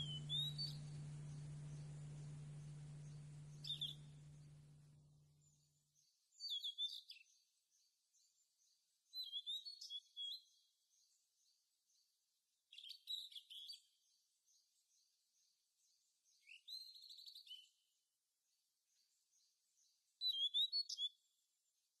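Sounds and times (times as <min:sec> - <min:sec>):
songbirds singing: 0:00.0 - 0:05.1
faint high chirps: 0:00.0 - 0:05.2.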